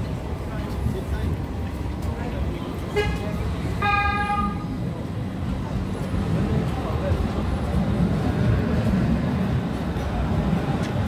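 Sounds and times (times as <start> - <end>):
city street rumble: 0.0 - 11.0
vehicle horn toot: 3.8 - 4.6.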